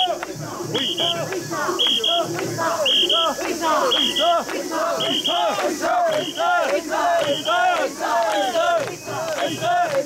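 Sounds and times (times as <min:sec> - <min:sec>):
crowd chanting in unison: 0:00.0 - 0:10.0
shrill whistle blasts: 0:00.8 - 0:01.2, 0:01.8 - 0:02.2, 0:02.8 - 0:04.3, 0:05.0 - 0:05.5.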